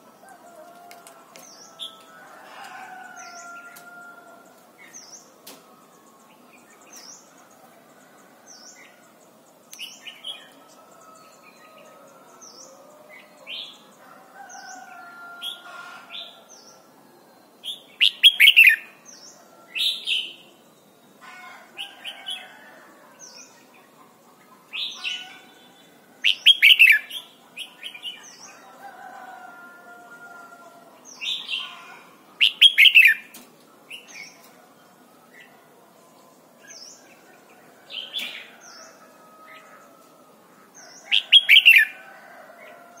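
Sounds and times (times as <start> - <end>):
bird warbling song: 31.1 - 34.5, 40.8 - 42.0.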